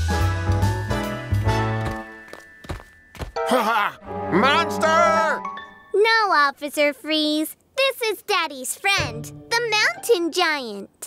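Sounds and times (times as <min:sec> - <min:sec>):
background music: 0:00.0 - 0:06.1, 0:09.0 - 0:10.4
heavy cartoon footsteps: 0:01.4 - 0:03.4.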